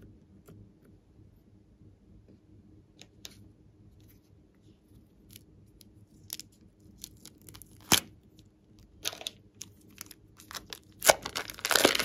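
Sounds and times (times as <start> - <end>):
plastic bag crinkling: 9.0 - 12.0.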